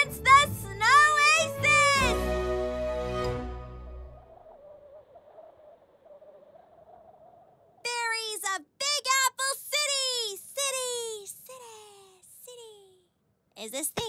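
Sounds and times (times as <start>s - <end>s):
cartoon girl's wordless vocal sounds: 7.9s - 14.0s.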